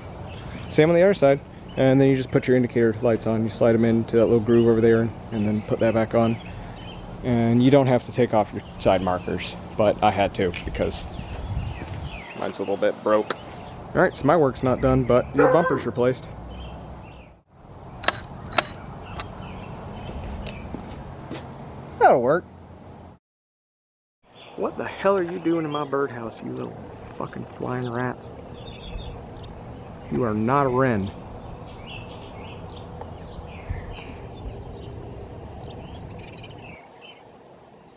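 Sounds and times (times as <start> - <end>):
sparrows chirping: 0.0 - 22.0, 24.2 - 37.9
outdoor background noise: 0.0 - 23.2, 24.2 - 37.9
low background rumble: 26.3 - 36.8.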